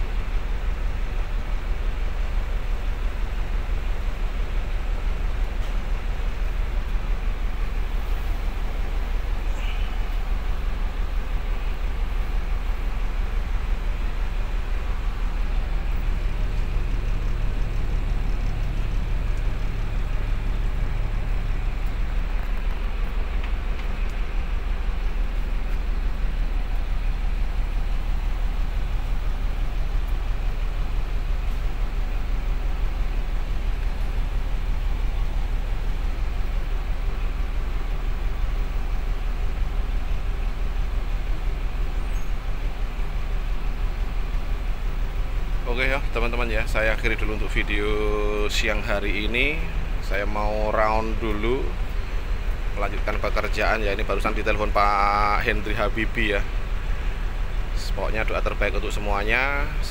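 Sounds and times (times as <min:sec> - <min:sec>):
bus diesel engine idling: 0:00.0 - 0:59.9.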